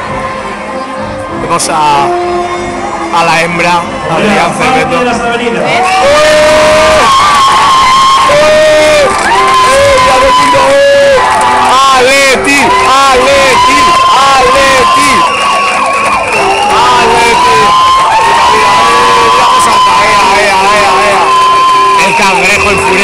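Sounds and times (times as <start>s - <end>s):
crowd shouting and cheering: 0.0s - 23.0s.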